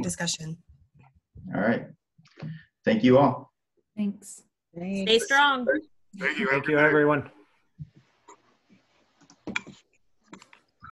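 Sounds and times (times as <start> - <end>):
computer keyboard and mouse clicks: 9.2 - 10.7.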